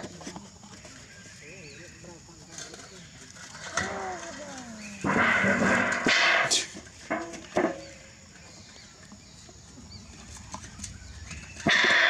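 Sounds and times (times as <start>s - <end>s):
monkeys clattering a metal basin: 2.4s - 8.7s, 10.3s - 12.0s
sharp knocks on metal: 11.6s - 12.0s.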